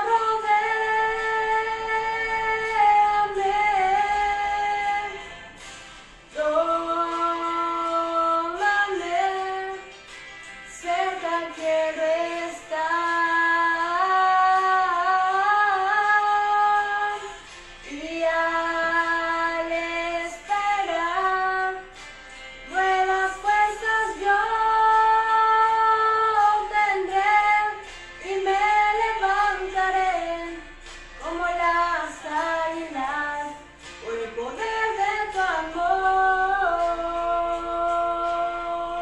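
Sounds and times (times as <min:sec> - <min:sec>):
woman singing sustained notes: 0:00.0 - 0:05.6, 0:10.7 - 0:22.0
woman singing worship song: 0:00.0 - 0:39.0.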